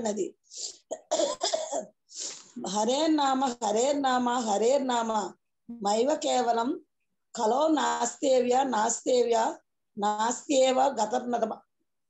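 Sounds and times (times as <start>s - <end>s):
person coughing: 0.8s - 1.9s.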